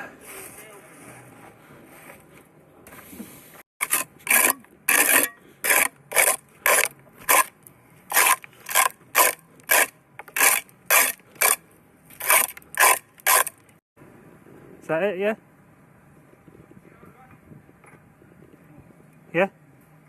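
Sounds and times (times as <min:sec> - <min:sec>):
tool scraping concrete: 0:03.8 - 0:13.7.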